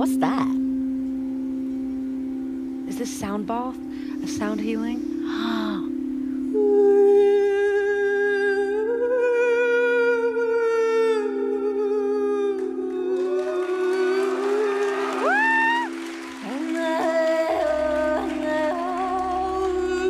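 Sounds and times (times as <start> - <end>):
singing bowls ringing: 0.5 - 20.0.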